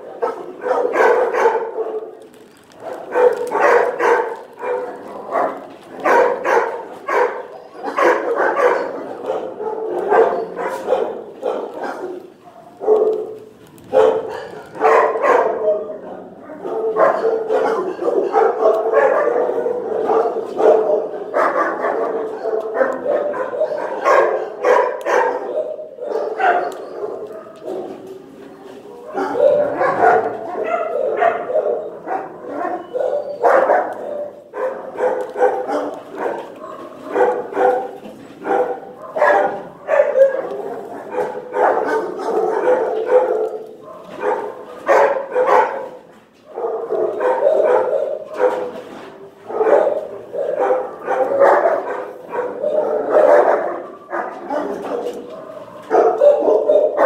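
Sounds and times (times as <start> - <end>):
dogs barking and yipping: 0.0 - 57.0.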